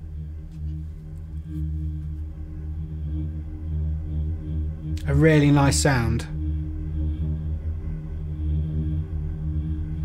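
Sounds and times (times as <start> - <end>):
choir-like synth pad: 0.0 - 10.0.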